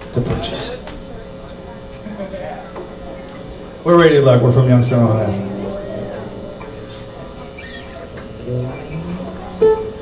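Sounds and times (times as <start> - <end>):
stray low instrument notes: 3.9 - 10.0
high chirp-like squeak: 5.5 - 9.0.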